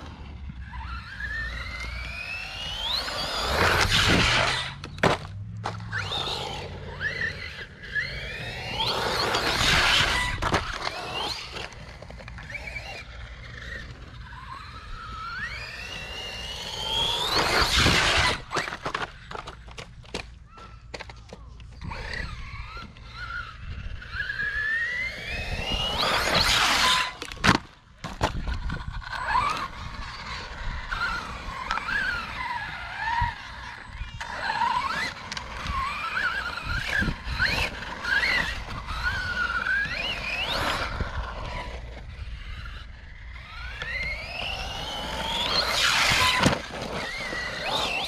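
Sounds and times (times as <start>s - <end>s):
electric motor whining: 0.0s - 19.8s, 21.7s - 27.5s, 28.1s - 48.0s.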